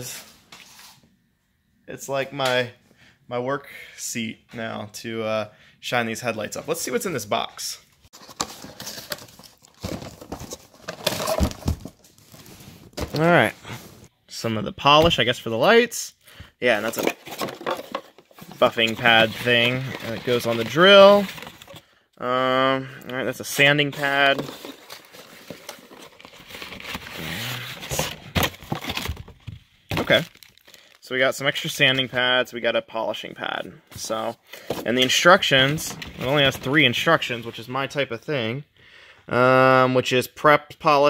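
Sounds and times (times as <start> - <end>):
cardboard and packaging rustling: 8.1 - 14.1, 16.6 - 21.8, 23.4 - 31.0, 33.9 - 37.3
plastic bag crinkling: 30.1 - 31.0.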